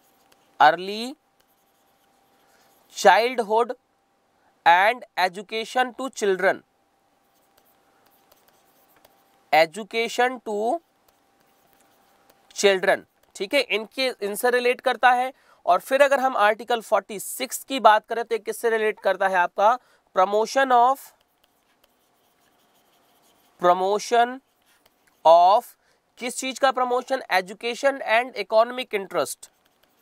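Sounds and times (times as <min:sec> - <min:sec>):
stylus tapping and scratching on tablet: 0:00.0 - 0:03.1, 0:07.2 - 0:15.1, 0:20.4 - 0:30.0.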